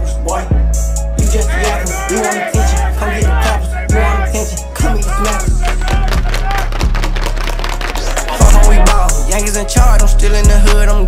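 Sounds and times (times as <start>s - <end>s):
deep bass: 0.0s - 11.0s
hip hop beat: 0.0s - 11.0s.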